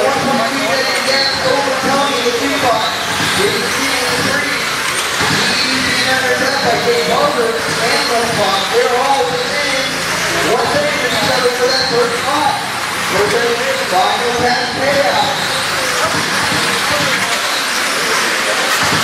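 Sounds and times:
rc car motors whining: 0.0 - 19.0.

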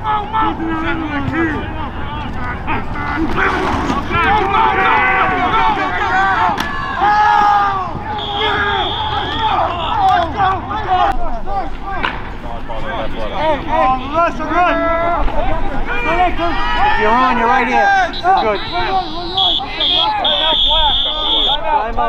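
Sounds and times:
voices shouting over each other: 0.0 - 12.1, 12.7 - 22.0.

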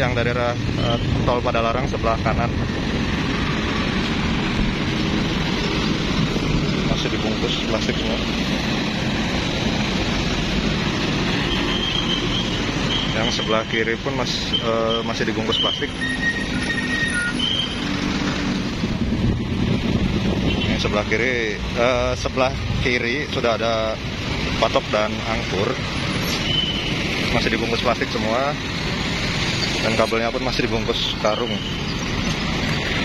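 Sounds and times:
road traffic noise: 0.0 - 33.0.

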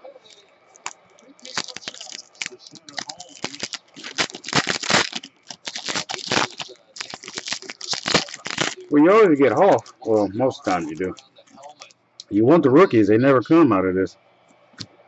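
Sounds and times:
foil wrapper crinkling: 0.1 - 11.9.

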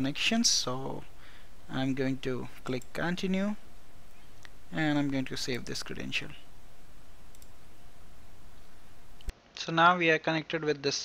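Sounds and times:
microphone hiss: 0.0 - 11.0
computer mouse clicks: 2.6 - 3.0, 7.3 - 7.6.

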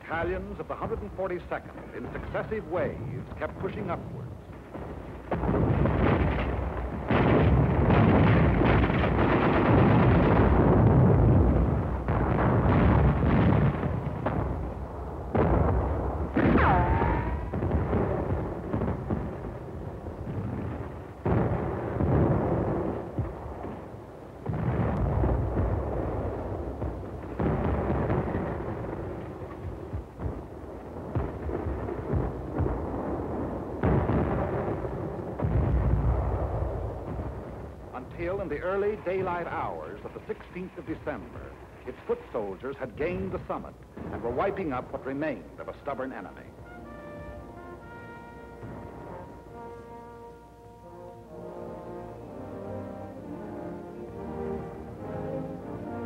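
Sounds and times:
artillery shell bursts: 0.0 - 53.0
gunfire: 1.7 - 50.4
falling whistle: 16.6 - 17.5.

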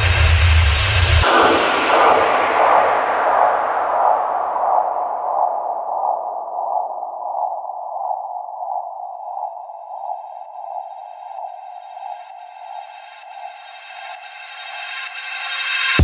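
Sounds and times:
techno music: 0.0 - 1.8
filtered synth noise whoosh: 1.2 - 14.4.

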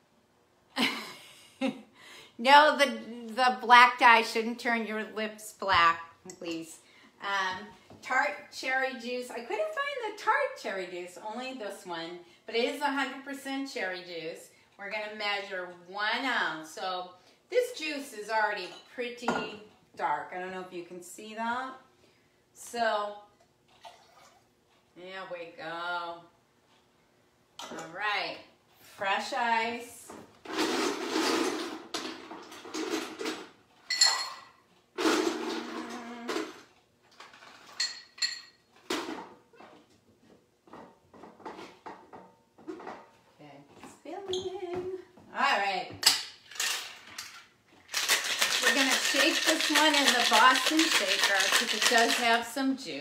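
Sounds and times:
faint juice pouring: 23.7 - 24.5
ice rattling in a shaker: 46.5 - 52.6.

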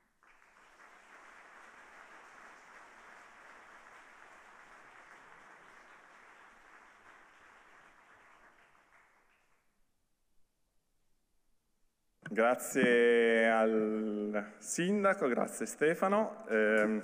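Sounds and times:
audience applauding: 0.0 - 9.7.

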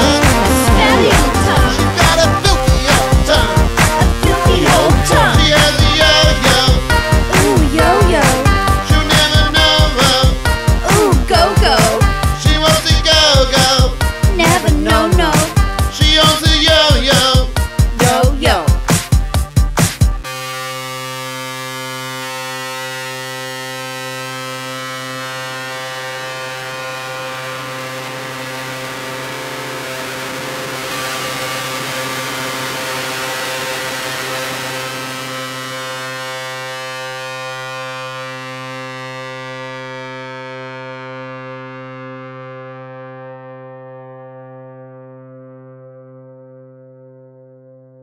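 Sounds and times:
held synthesizer chord: 0.0 - 47.7
distorted hiss: 24.6 - 36.8.

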